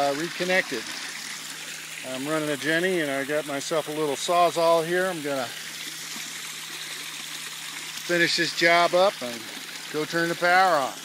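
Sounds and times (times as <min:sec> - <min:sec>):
water running and splashing: 0:00.0 - 0:11.0.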